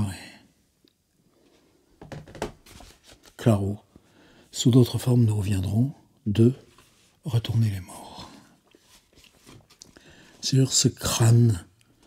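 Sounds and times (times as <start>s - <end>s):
book pages rustling: 2.4s - 3.5s, 8.7s - 10.6s.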